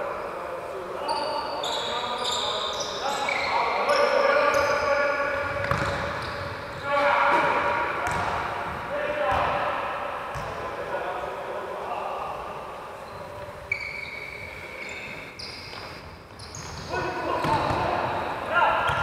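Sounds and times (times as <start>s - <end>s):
shoes squeaking on wooden court: 1.0s - 7.5s, 13.0s - 18.3s.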